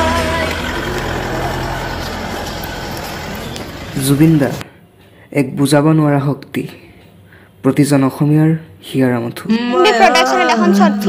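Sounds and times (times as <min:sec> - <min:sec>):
music: 0:00.0 - 0:03.1
vehicle engine running: 0:00.0 - 0:04.6.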